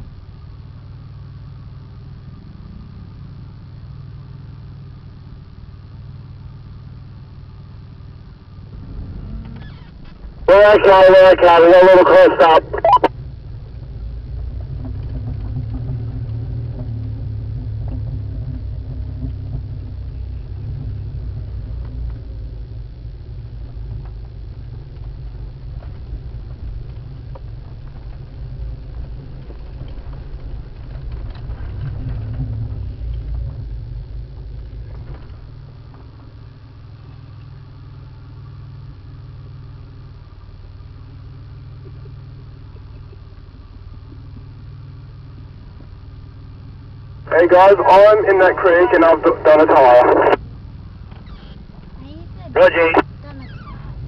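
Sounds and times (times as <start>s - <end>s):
vehicle engine rumbling: 0.0s - 54.0s.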